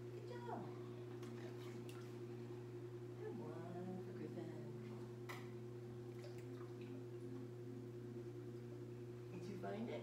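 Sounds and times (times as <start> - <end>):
steady low hum: 0.0 - 10.0
water dripping: 6.1 - 7.5.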